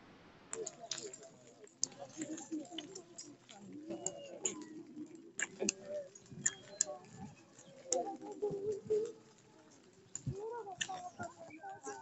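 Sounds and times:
voices of procession: 0.0 - 12.0.

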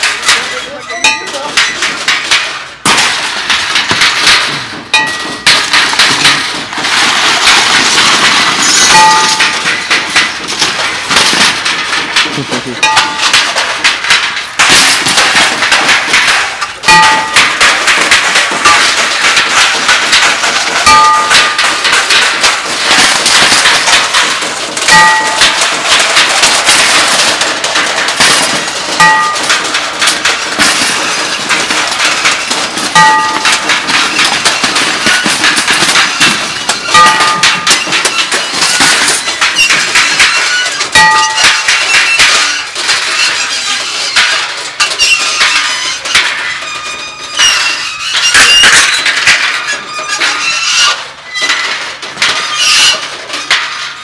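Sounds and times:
metal clattering and banging: 0.0 - 54.0
wire shopping cart dragged: 5.6 - 13.7, 17.0 - 54.0.

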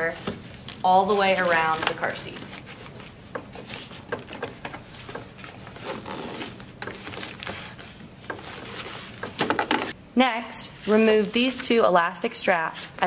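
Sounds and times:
fabric rustling over plastic: 0.1 - 10.0.

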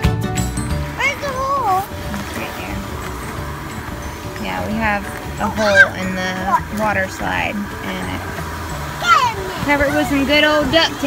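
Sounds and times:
music: 0.0 - 11.0
steady background noise: 0.6 - 11.0
young children calling out: 5.4 - 6.1, 9.0 - 9.7.

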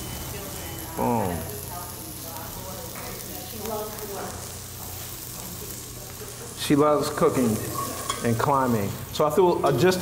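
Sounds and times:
onion sizzling in oil: 0.0 - 10.0
spoon stirring in a pot: 7.7 - 8.3.

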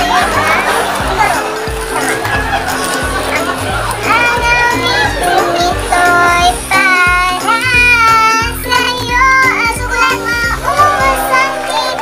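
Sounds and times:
song with sung vocals and beat: 3.5 - 12.0.

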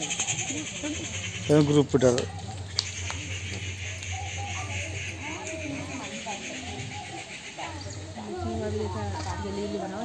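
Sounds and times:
women and children chattering: 0.0 - 10.0.

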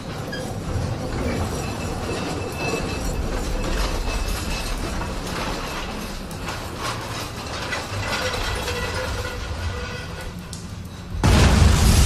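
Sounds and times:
metallic clatter: 0.0 - 11.2.

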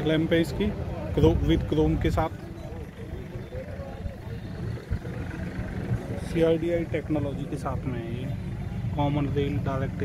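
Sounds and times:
chatter of voices: 0.0 - 10.0
steady low rumble: 1.1 - 10.0.

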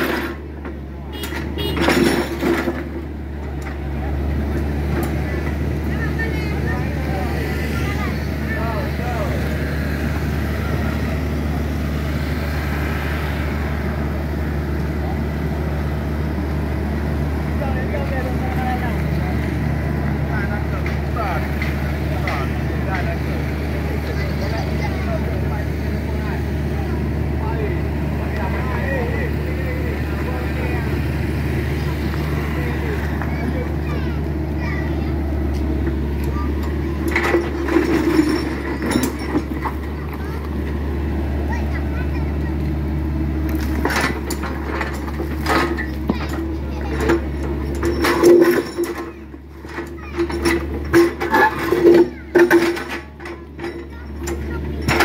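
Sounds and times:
excavator diesel engine running: 0.0 - 55.0.

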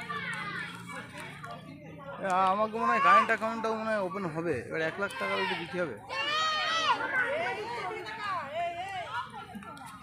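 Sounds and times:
children and people chattering: 0.0 - 10.0.

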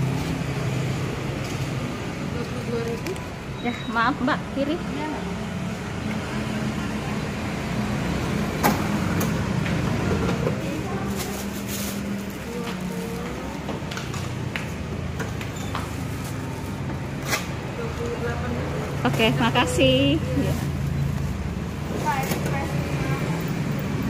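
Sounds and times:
plastic bag rustling: 10.6 - 13.5.

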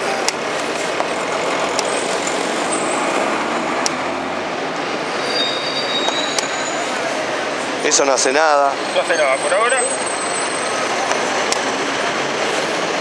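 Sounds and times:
street traffic: 0.0 - 13.0.

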